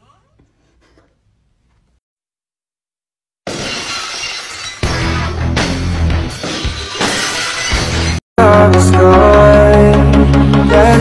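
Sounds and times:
glass shattering: 3.5s - 5.5s, 6.1s - 8.2s
music with heavy bass: 8.4s - 11.0s.

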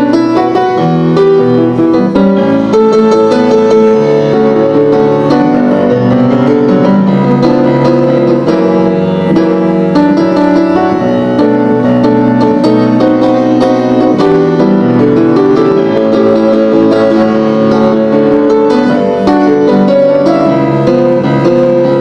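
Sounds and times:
grand piano playing: 0.0s - 22.0s.

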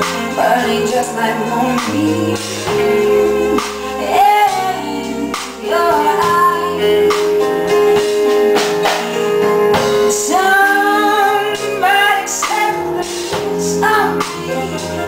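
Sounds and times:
woman singing: 0.0s - 8.4s, 9.8s - 15.0s
live band playing: 0.0s - 15.0s.

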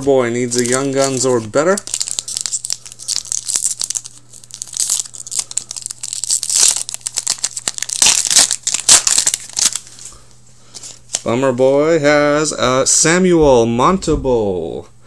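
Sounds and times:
foil card pack tearing and crinkling: 0.0s - 10.1s.

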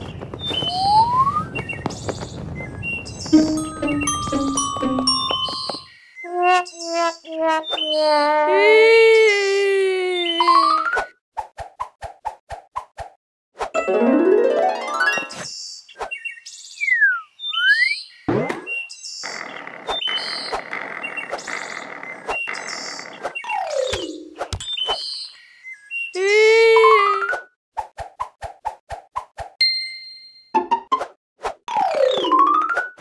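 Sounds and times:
light children's music: 3.3s - 6.6s, 13.8s - 15.5s
short ding: 3.4s - 5.9s.

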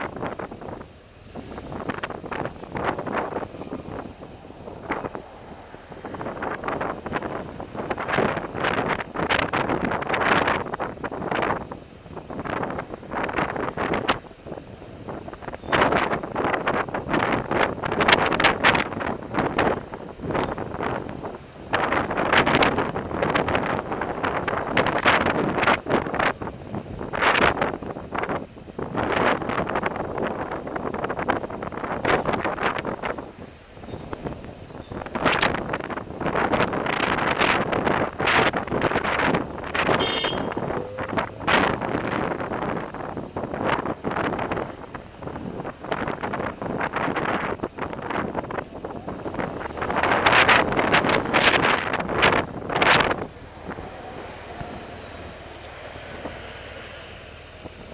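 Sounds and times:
faint traffic: 0.0s - 57.9s
wind buffeting microphone: 0.0s - 57.9s
high-pitched squeal: 2.6s - 4.2s, 39.9s - 42.2s, 52.7s - 57.9s.

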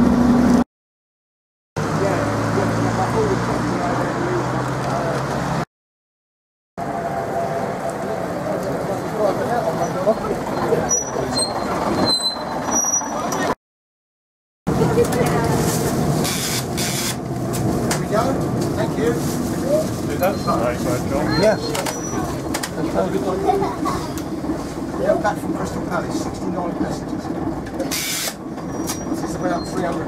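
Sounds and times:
bus diesel engine drone: 0.0s - 0.6s, 1.8s - 5.6s, 6.8s - 13.6s, 14.7s - 30.0s
passengers chatting: 7.2s - 13.6s, 14.7s - 30.0s.

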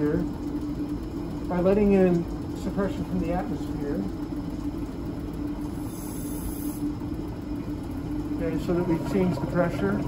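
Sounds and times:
low mechanical hum: 0.0s - 10.0s
air hissing through stopcock: 5.7s - 7.0s.

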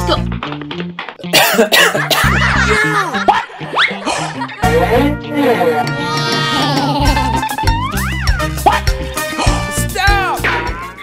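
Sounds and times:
background music with bass line: 0.0s - 11.0s
person coughing: 1.3s - 3.1s.

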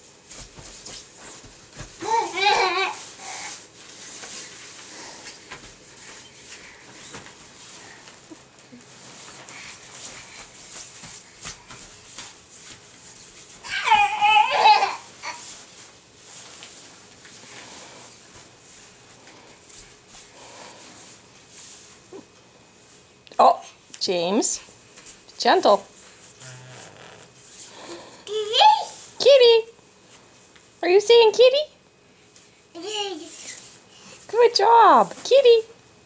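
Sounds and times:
baby voiced sound: 13.6s - 15.4s.

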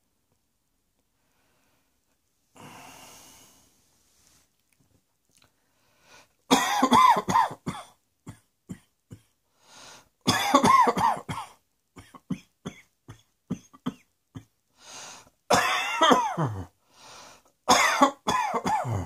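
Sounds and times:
person coughing: 6.5s - 9.4s, 10.3s - 14.5s, 15.5s - 16.7s, 17.7s - 19.0s.

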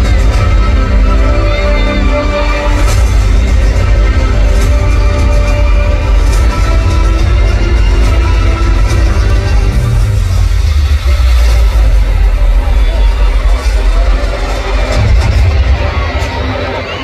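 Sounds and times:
live pop music over loudspeakers: 0.0s - 17.0s.

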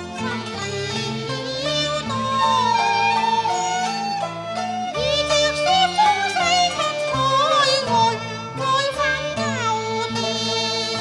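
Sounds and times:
traditional instrumental accompaniment: 0.0s - 11.0s
woman singing opera: 0.0s - 11.0s.

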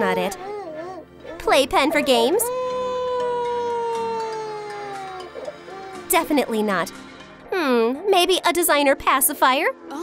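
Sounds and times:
baby crying wail: 0.1s - 6.1s.

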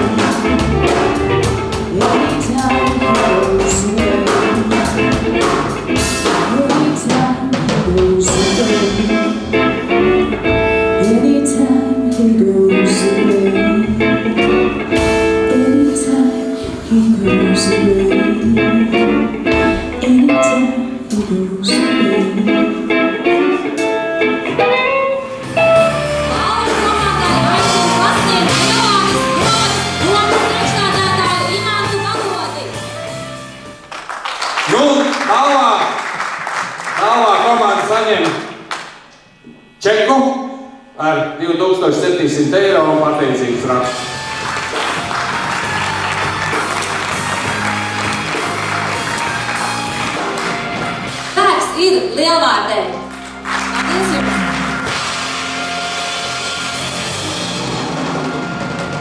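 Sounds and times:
electric guitar: 0.0s - 33.9s, 43.2s - 59.0s
drum kit: 0.0s - 35.3s, 43.6s - 59.0s.

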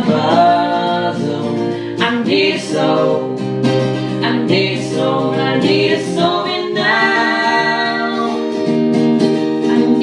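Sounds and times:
man and woman singing together: 0.0s - 8.6s
strummed acoustic guitar: 0.0s - 10.0s.

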